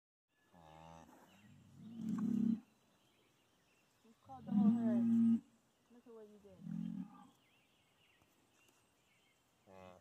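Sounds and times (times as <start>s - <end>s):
cattle lowing: 0.6s - 2.8s, 4.3s - 5.5s.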